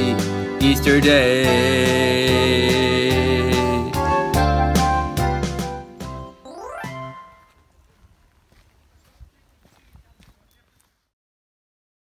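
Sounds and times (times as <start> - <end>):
footsteps on dry leaves: 7.3 - 11.1.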